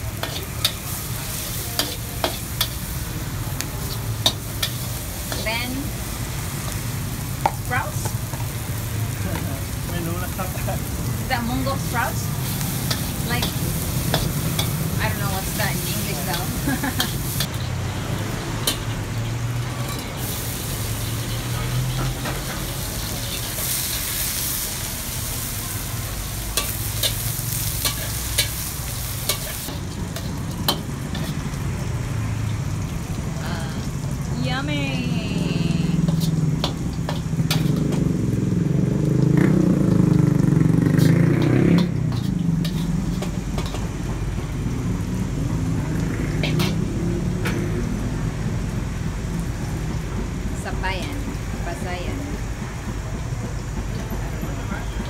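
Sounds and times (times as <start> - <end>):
metal spatula scraping wok: 0.0 - 17.8, 19.6 - 31.5, 36.0 - 38.0, 40.9 - 44.0, 46.4 - 46.9
oil sizzling: 0.0 - 55.0.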